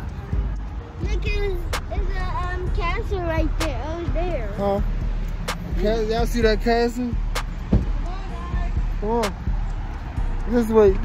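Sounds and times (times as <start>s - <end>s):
sharp knocks: 7.4s - 8.0s.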